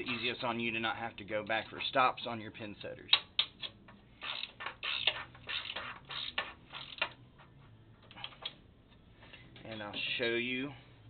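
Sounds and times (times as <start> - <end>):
ratchet wrench clicking: 3.4 - 7.2.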